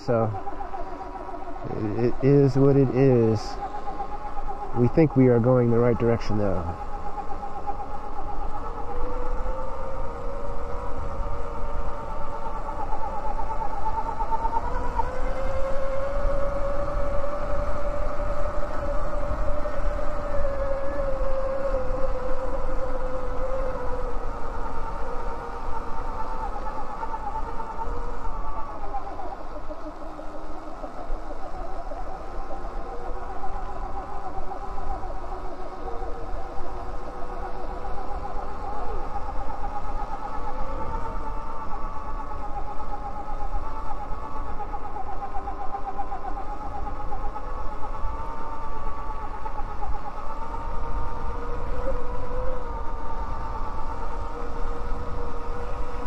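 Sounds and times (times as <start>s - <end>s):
wind rumble: 0.0s - 56.0s.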